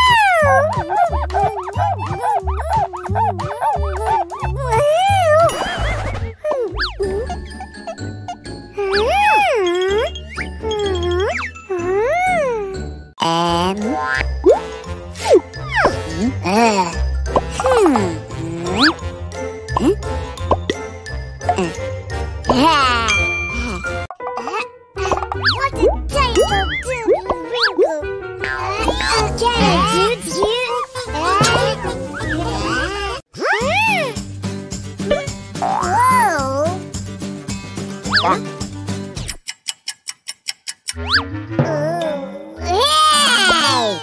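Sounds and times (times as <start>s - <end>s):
sped-up cartoon voice babbling: 0.0s - 5.4s
upbeat children's music: 0.0s - 39.8s, 40.9s - 44.0s
jingling effect: 22.6s - 24.1s.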